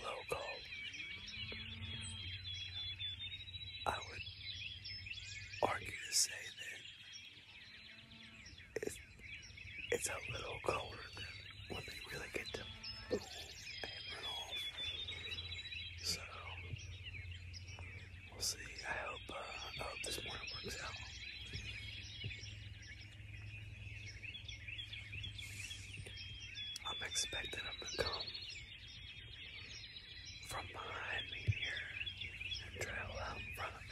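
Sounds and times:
bird trilled song: 0.0 - 33.9
songbirds chirping: 0.0 - 33.9.

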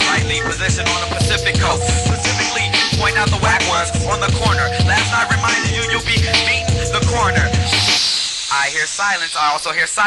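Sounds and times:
hip hop beat: 0.0 - 10.0
person rapping: 0.0 - 10.0.

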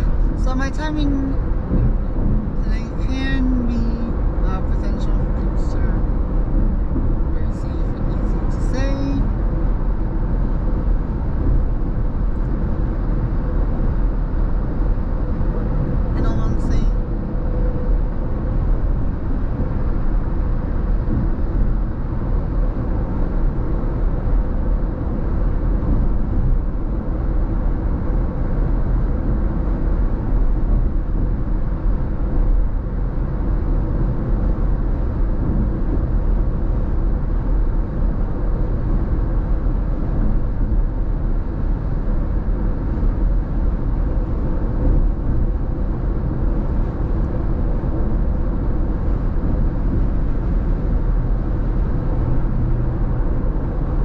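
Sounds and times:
road and tyre noise in car: 0.0 - 54.0.

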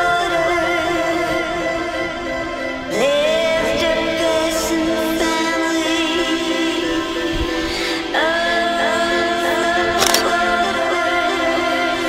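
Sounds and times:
background music with held chords: 0.0 - 12.0.

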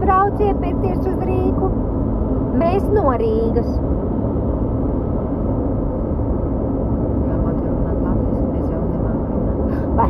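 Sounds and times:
car engine and road drone: 0.0 - 10.0.

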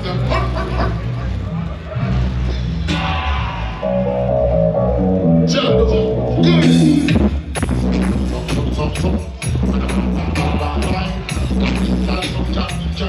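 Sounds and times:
dub music with heavy bass: 0.0 - 13.0
falling swept effect: 3.8 - 7.2
held melody line: 3.8 - 8.7.

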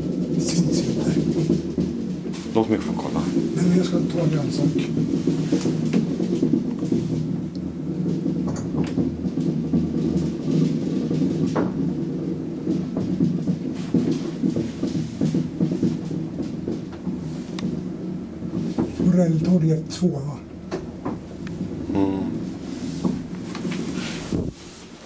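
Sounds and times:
elevator hum and rumble: 0.0 - 25.0.

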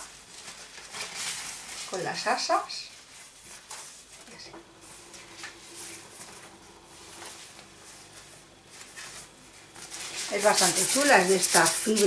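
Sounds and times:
plastic bag rustling: 0.0 - 4.2, 4.8 - 12.0.

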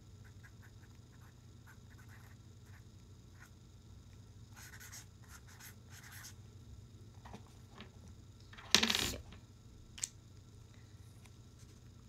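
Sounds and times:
marker scratching on paper: 0.3 - 2.8, 4.6 - 6.4.

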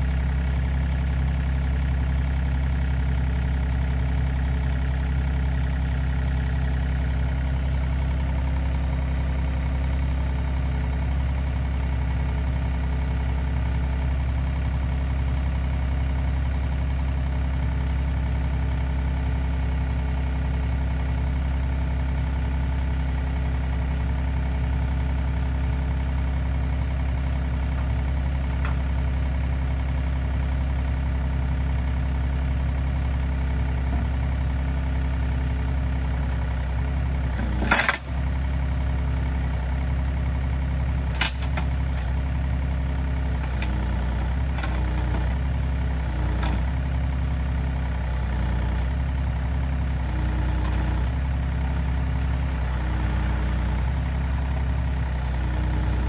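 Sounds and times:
diesel engine idling: 0.0 - 56.0.

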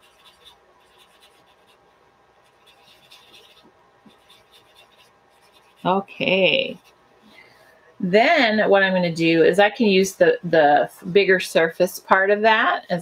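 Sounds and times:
paper towel rubbing on paper: 0.0 - 7.0.

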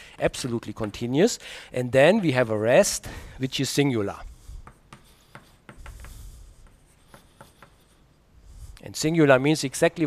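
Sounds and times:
chalk tapping on blackboard: 0.7 - 1.1, 4.6 - 8.0
chalk scratching on blackboard: 4.3 - 8.2.

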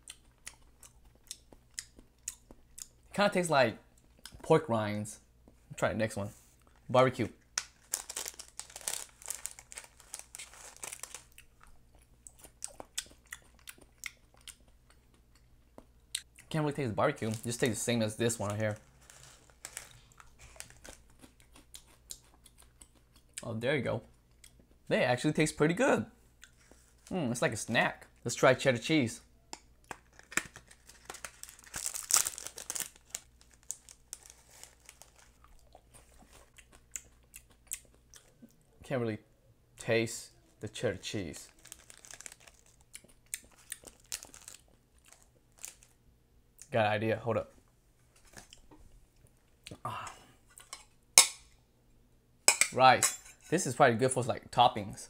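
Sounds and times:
plastic snack bag crinkling: 6.6 - 14.3, 16.9 - 21.8, 29.9 - 37.2, 40.4 - 46.0
crisp crunching chewing: 6.6 - 16.5, 18.4 - 23.4, 29.8 - 38.6, 41.4 - 46.0.

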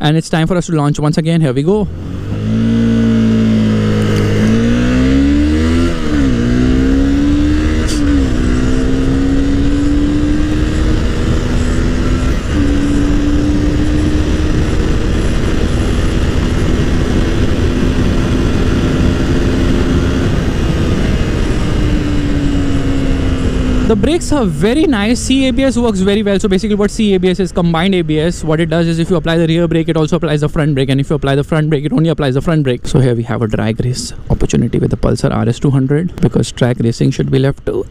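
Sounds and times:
motorcycle engine accelerating: 1.8 - 32.8
wind rushing over microphone: 1.9 - 30.0.

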